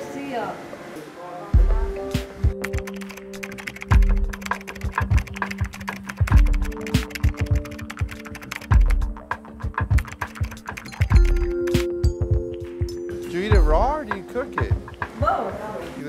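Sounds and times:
background music with bass beats: 1.6 - 15.8
rapid keyboard typing clicks: 2.6 - 11.9.

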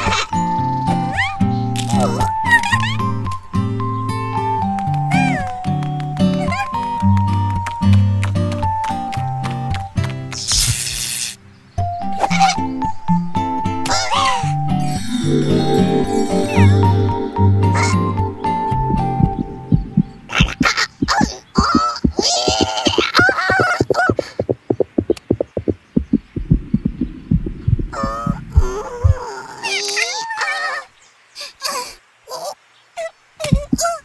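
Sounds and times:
wordless character vocalizations: 14.4 - 18.7
short music phrase: 14.8 - 20.4
fast heartbeat-like thumping: 18.7 - 29.2, 33.5 - 33.9.

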